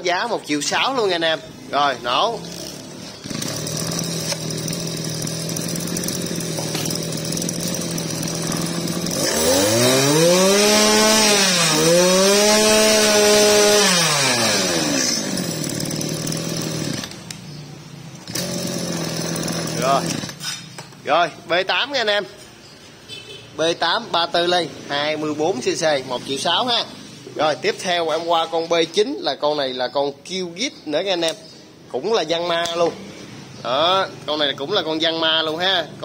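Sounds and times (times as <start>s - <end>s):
two-stroke brush cutter engine: 2.1s - 17.5s, 18.2s - 20.8s.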